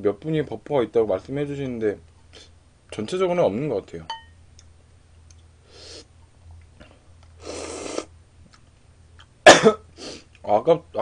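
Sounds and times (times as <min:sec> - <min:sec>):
person slurping noodles: 0:07.4 - 0:08.1.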